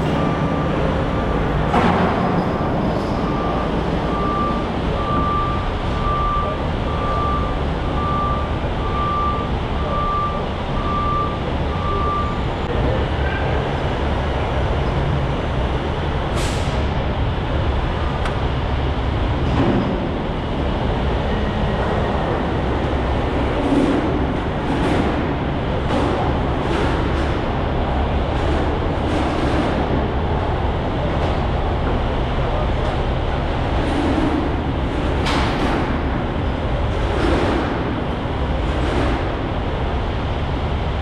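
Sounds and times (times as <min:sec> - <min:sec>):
truck engine idling: 0:00.0 - 0:41.0
reverse warning beeper: 0:03.0 - 0:12.5.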